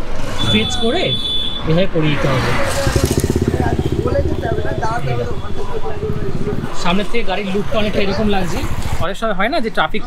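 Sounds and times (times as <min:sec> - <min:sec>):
motorcycle engine thudding: 0:02.7 - 0:07.0.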